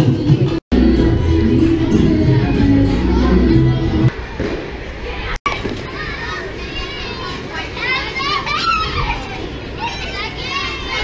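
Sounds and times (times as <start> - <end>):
children shouting and squealing: 5.0 - 11.0.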